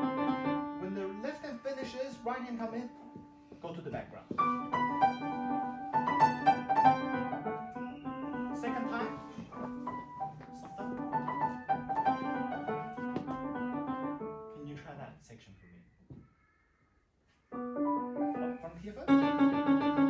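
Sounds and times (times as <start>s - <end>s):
grand piano playing: 0.0s - 3.6s, 4.4s - 14.6s, 17.5s - 20.0s.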